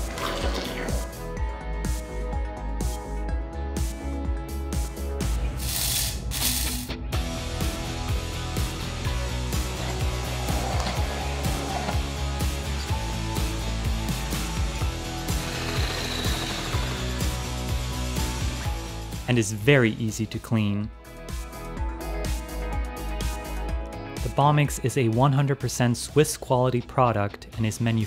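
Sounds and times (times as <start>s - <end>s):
background music: 0.0s - 28.0s
stick blender grinding beans: 15.2s - 17.4s.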